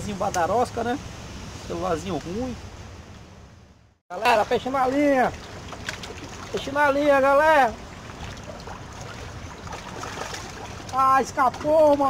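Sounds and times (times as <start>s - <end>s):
water washing along rocky shore: 4.1s - 12.0s.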